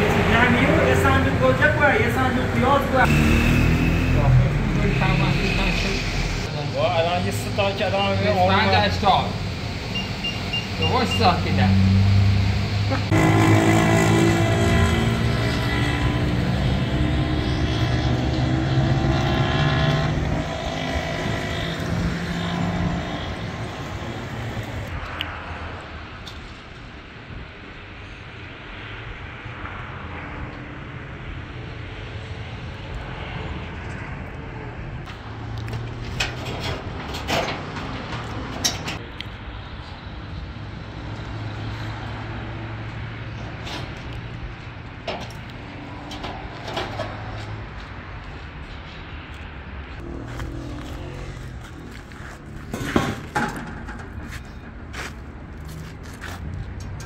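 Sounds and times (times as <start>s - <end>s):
vehicle engine running: 50.0s - 55.8s.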